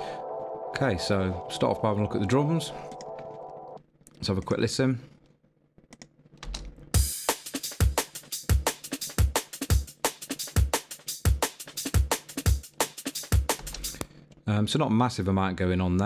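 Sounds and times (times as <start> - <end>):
snare drum: 7.0 - 13.9.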